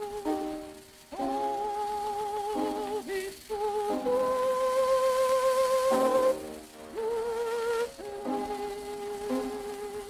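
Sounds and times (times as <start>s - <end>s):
record surface hiss: 0.0s - 10.0s
soprano singing a long note: 0.0s - 10.0s.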